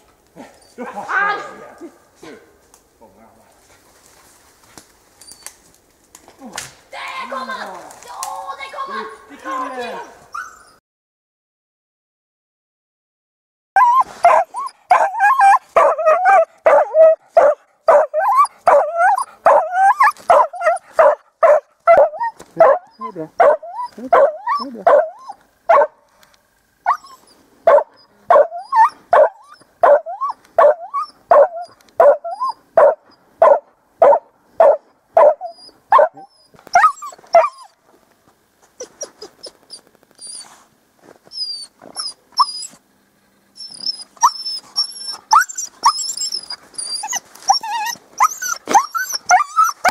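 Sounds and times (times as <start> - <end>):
dog barking: 14.2 - 26.0, 27.7 - 37.6
short high squeaks: 43.6 - 49.9.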